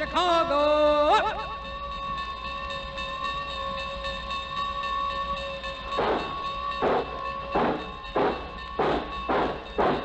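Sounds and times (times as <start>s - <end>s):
locomotive exhaust chuffs: 1.8s - 10.0s
train whistle: 2.8s - 10.0s.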